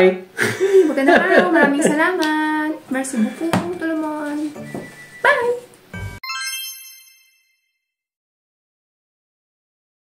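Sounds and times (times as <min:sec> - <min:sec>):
tinkling chime: 0:06.0 - 0:07.9.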